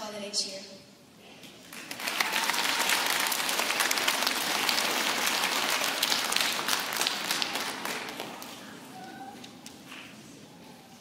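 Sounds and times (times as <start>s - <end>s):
audience applauding: 1.7s - 8.9s.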